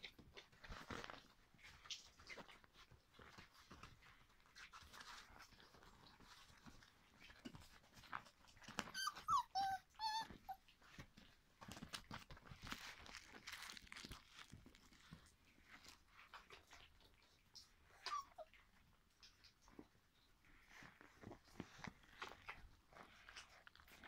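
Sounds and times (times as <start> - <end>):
puppies rustling on a quilt: 0.0 - 24.0
puppies yelping: 8.9 - 10.6, 18.0 - 18.5.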